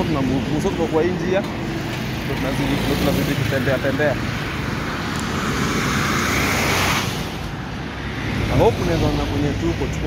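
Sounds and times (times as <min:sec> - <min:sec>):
low engine hum of traffic: 0:00.0 - 0:10.0
passing vehicle rushing: 0:00.0 - 0:10.0.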